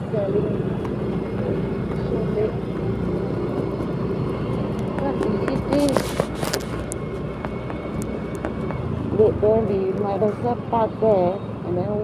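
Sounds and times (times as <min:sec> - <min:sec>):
motor scooter engine hum: 0:00.0 - 0:12.0
road and wind noise: 0:00.0 - 0:12.0.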